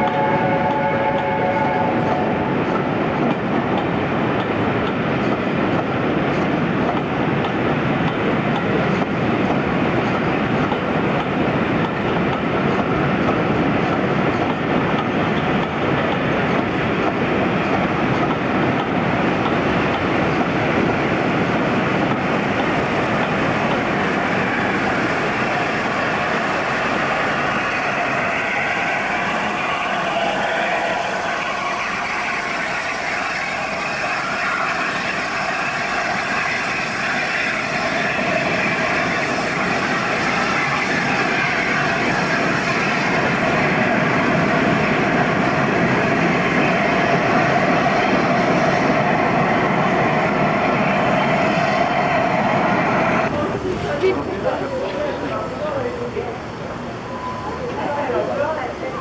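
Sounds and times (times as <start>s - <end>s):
train rushing past: 0.0s - 59.0s.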